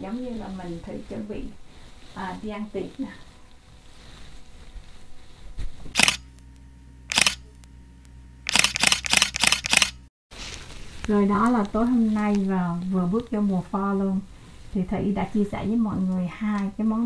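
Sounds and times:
camera shutter clicks: 6.0 - 6.3, 7.1 - 7.5, 8.5 - 10.0.

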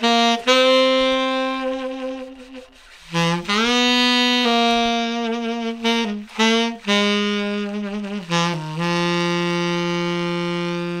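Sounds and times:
saxophone holding long note: 0.0 - 11.0.

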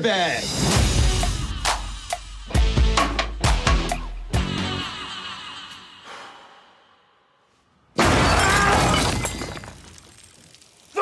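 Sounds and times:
crashing clattering breakage: 8.0 - 11.0.

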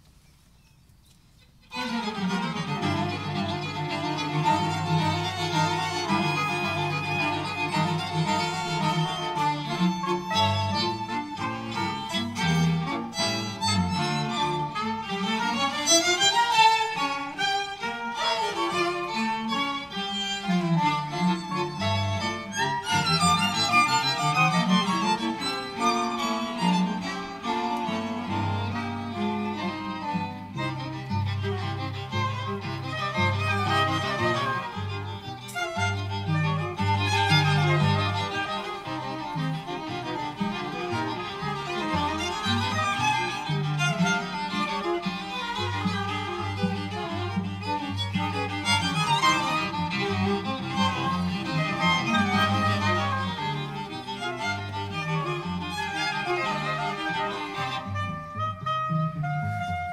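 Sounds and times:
bowed violins: 1.4 - 59.9
cello holding low notes: 1.8 - 59.9.

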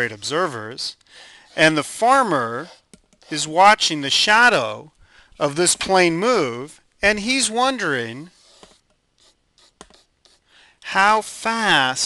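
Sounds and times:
stylus scratching on tablet: 1.5 - 3.8, 8.2 - 10.5.

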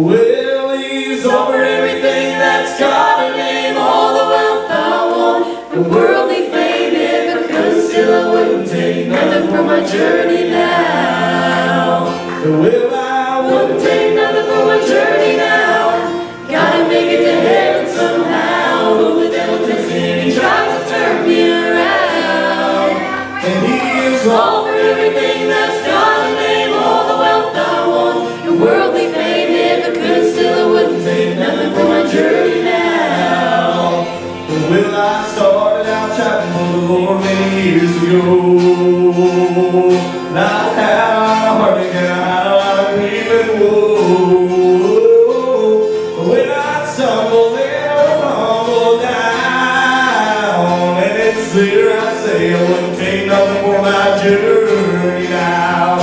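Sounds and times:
group singing gospel in harmony: 0.0 - 56.0.

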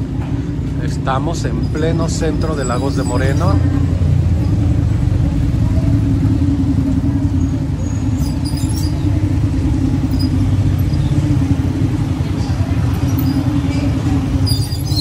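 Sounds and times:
motorcycle engines humming: 0.0 - 15.0
traffic rumble: 0.0 - 15.0.

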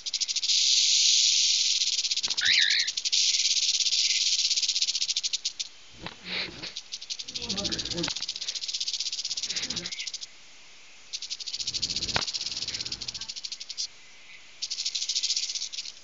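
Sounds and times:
cockatiel hissing: 2.2 - 3.4, 6.0 - 8.6, 9.4 - 10.1, 11.6 - 13.3.

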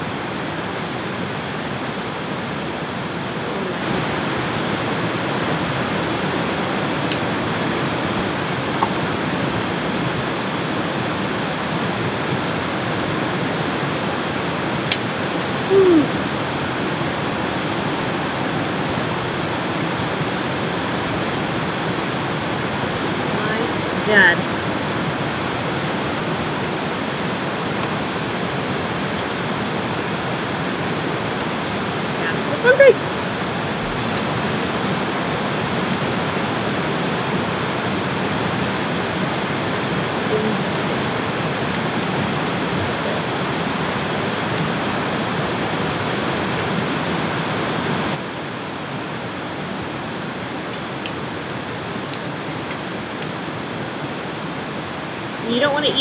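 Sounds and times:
running water rushing: 0.0 - 56.0.

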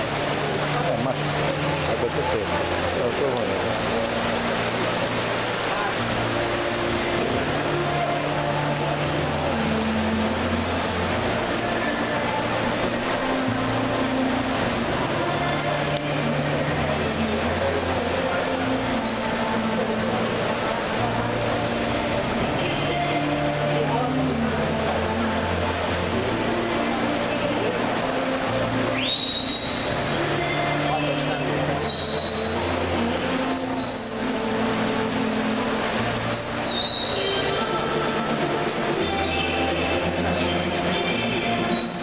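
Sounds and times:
music with sustained low notes: 0.0 - 29.1
swimmers splashing: 0.0 - 42.0
voices echoing in pool hall: 0.0 - 42.0.

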